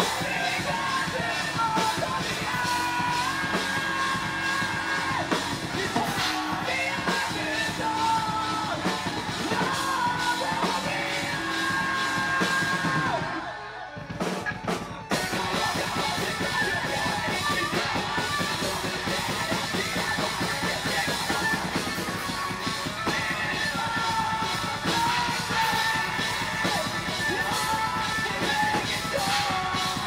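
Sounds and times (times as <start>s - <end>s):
metal band playing: 0.0s - 30.0s
yelled vocals: 0.0s - 30.0s.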